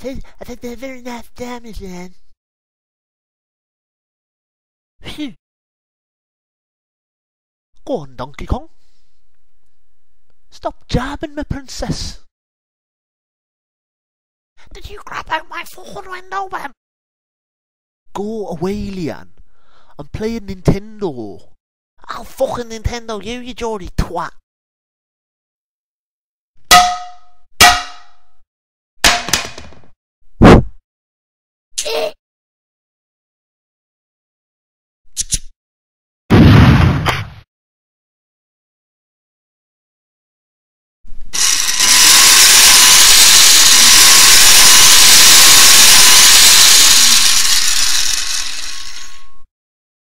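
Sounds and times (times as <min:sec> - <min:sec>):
frying pan clanging on a head: 0:26.7 - 0:28.2
power tool running: 0:41.4 - 0:49.4.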